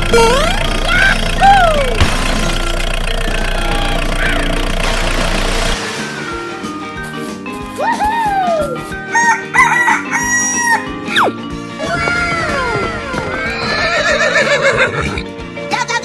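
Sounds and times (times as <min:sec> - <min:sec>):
background music: 0:05.7 - 0:16.0
rooster crowing: 0:09.1 - 0:10.9.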